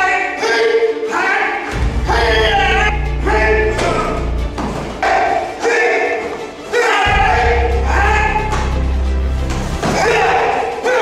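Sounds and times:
deep bass note: 0:01.7 - 0:05.0, 0:07.1 - 0:09.8.

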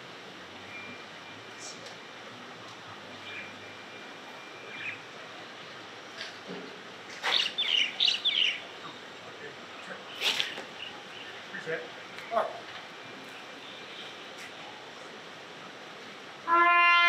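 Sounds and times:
faint steady hiss: 0:00.0 - 0:17.0
bird chirping: 0:03.2 - 0:05.1, 0:07.2 - 0:09.0, 0:10.1 - 0:11.8.

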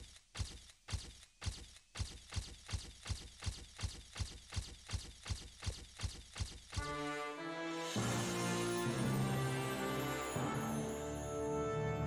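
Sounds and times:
theme music: 0:06.8 - 0:12.0.

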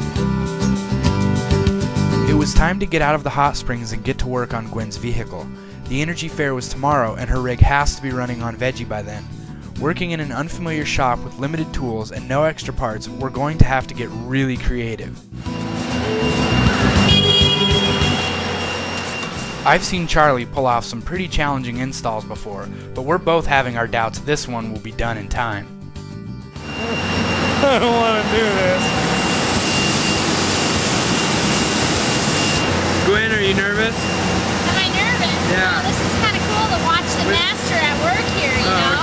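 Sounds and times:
background music: 0:00.0 - 0:32.2, 0:32.8 - 0:39.0
electric motor whine: 0:15.4 - 0:19.6, 0:26.6 - 0:39.0
loud rushing machine noise: 0:15.4 - 0:19.8, 0:26.6 - 0:39.0
steady high tone: 0:15.4 - 0:19.9, 0:26.6 - 0:39.0.

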